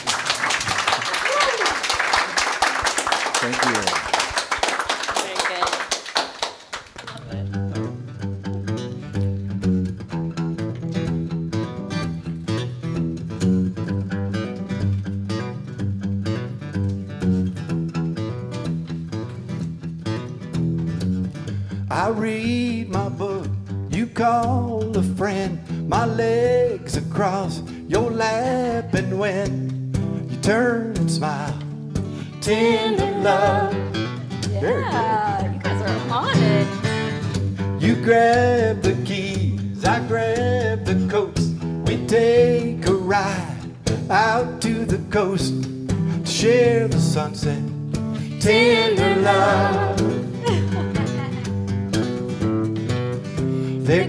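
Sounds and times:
acoustic guitar strumming: 0:07.4 - 0:54.0
person singing: 0:32.4 - 0:37.0, 0:37.8 - 0:45.4, 0:48.3 - 0:51.5, 0:53.8 - 0:54.0.

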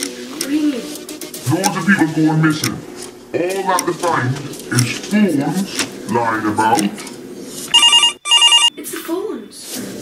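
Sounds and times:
telephone warbling ring: 0:07.7 - 0:08.7.

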